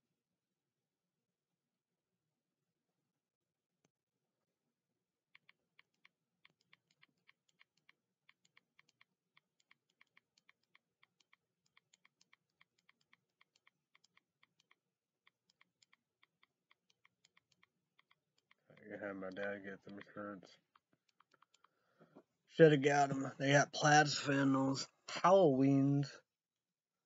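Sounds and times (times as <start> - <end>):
typing on keyboard: 5.3 - 21.7.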